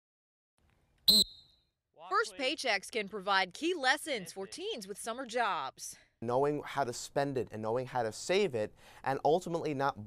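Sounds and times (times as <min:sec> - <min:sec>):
whistle blast: 0:01.1 - 0:01.7.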